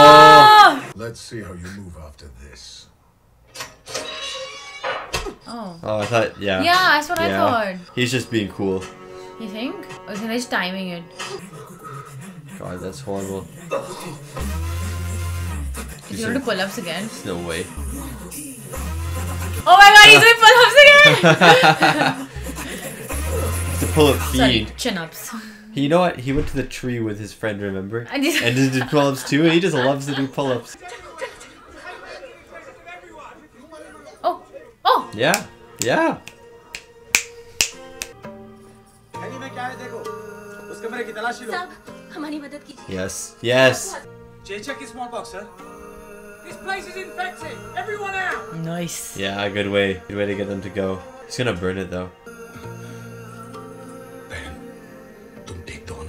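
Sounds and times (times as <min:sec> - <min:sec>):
film dialogue through a speaker: 0:00.0 - 0:56.0.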